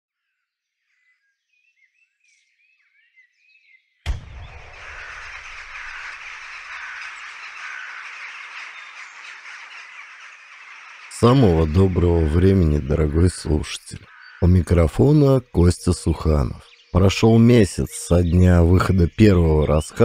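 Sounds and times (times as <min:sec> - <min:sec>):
bird chirps: 0:00.1 - 0:20.0
low thump: 0:04.1 - 0:06.2
steady outdoor hiss: 0:04.1 - 0:20.0.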